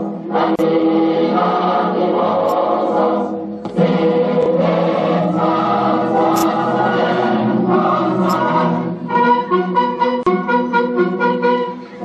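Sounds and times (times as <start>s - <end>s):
voices singing: 0.0s - 9.8s
brass band playing: 9.0s - 12.0s.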